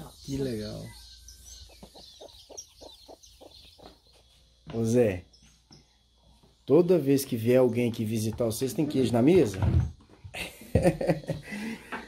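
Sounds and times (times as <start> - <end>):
chickens clucking: 0.0 - 10.4
faint high peeping: 0.0 - 11.8.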